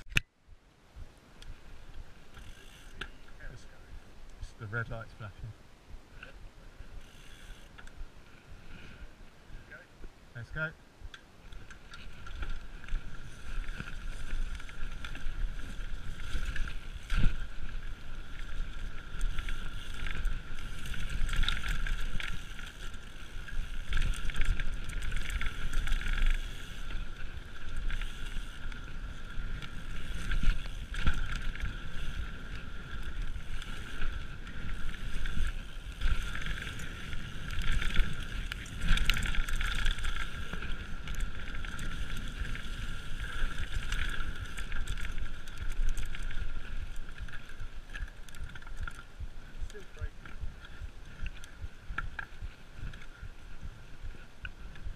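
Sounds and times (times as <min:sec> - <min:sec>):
bike tyre noise: 0:01.4 - 0:04.7, 0:06.1 - 0:09.8, 0:10.4 - 0:54.9.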